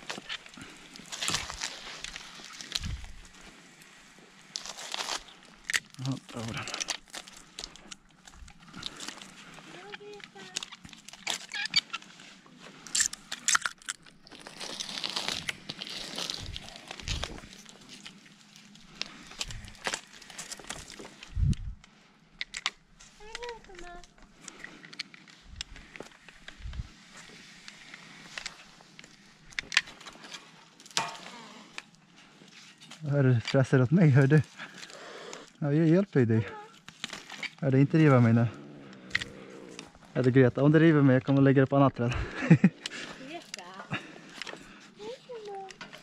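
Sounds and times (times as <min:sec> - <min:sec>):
twigs crackling and snapping: 0:00.0 - 0:36.0, 0:36.7 - 0:40.4, 0:42.4 - 0:46.0
branches and needles rustling: 0:00.0 - 0:46.0.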